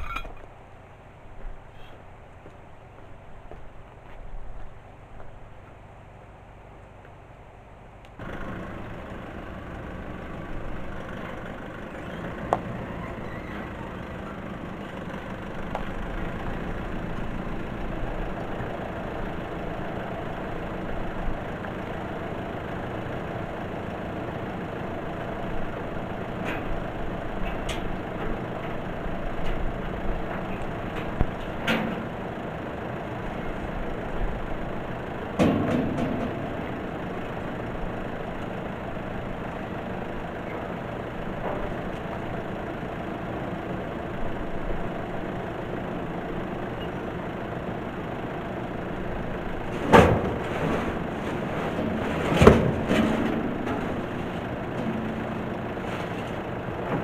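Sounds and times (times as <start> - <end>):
trailer load clattering: 0.0 - 0.6, 8.2 - 57.0
car engine running: 8.2 - 57.0
sharp knocks from trailer: 35.3 - 36.6, 49.7 - 55.2.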